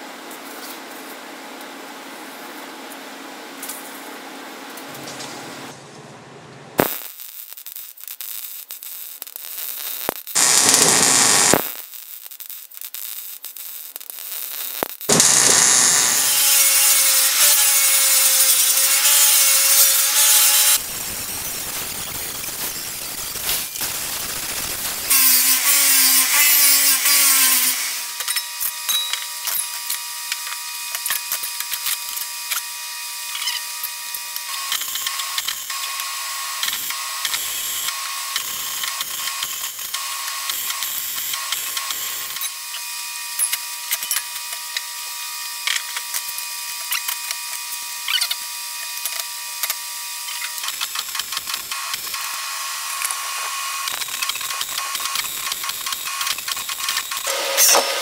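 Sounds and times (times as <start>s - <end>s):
welder crackling and sizzling: 6.8s - 58.0s
angle grinder whining on steel: 10.4s - 11.6s, 15.1s - 20.9s, 55.9s - 58.0s.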